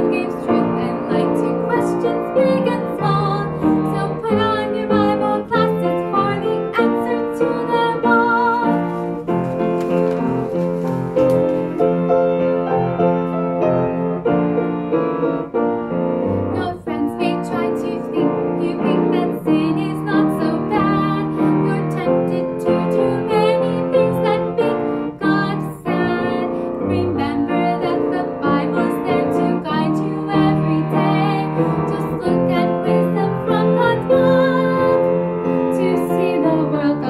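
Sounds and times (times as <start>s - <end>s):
woman singing: 0.0s - 9.0s, 16.5s - 37.0s
piano accompaniment: 0.0s - 37.0s.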